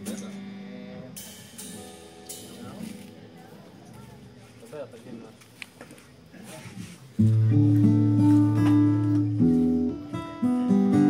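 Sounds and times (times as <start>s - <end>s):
loose guitar and bass notes: 0.0s - 4.4s, 7.1s - 11.0s.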